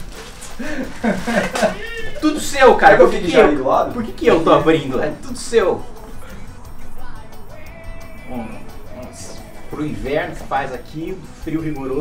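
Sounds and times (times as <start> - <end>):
people laughing: 0.5 - 5.2.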